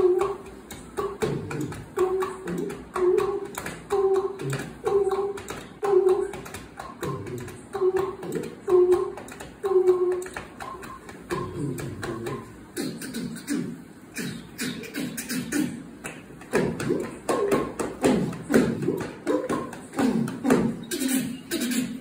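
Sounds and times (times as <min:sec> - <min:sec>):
beatboxing: 0:00.0 - 0:22.0.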